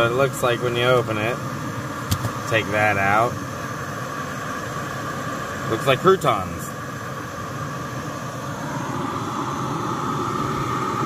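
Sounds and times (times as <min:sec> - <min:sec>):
gas stove hissing and roaring: 0:00.0 - 0:11.0.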